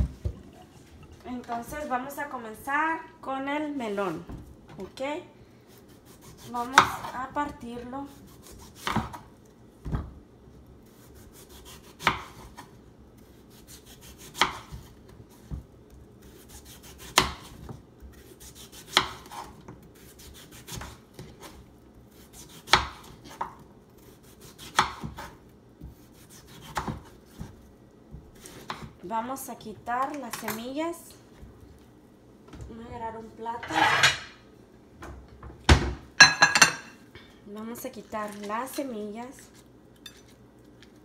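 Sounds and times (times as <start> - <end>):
knife scraping melon rind: 5.7 - 7.2, 10.8 - 15.5, 16.2 - 27.6, 38.4 - 40.5.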